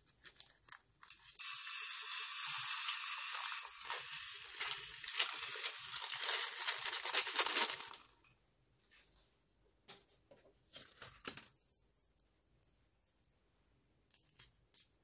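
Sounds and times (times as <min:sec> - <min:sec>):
tiny beads pattering onto glass: 0:01.4 - 0:08.0
scissors cutting plastic bag: 0:03.6 - 0:08.1.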